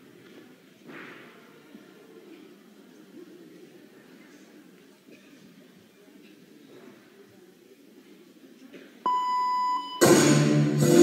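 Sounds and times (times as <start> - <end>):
faint crowd murmur: 0.0 - 11.0
electronic beep: 9.1 - 10.2.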